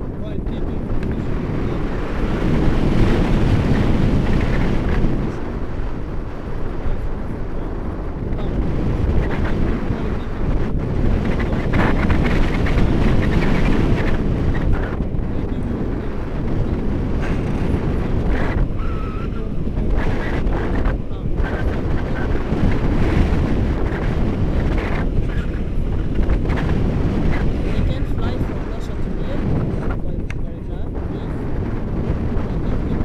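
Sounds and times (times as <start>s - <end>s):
wind rushing over microphone: 0.0s - 33.0s.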